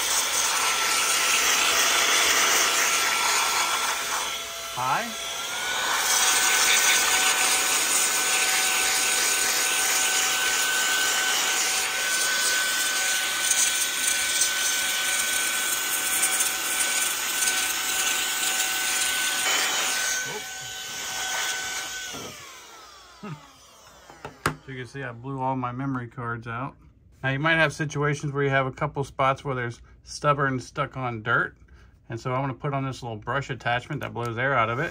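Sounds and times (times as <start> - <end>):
electric motor whining: 0.0 - 24.7.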